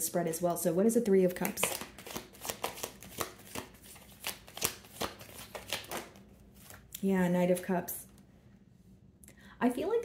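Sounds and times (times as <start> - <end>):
cards being shuffled by hand: 1.4 - 6.9.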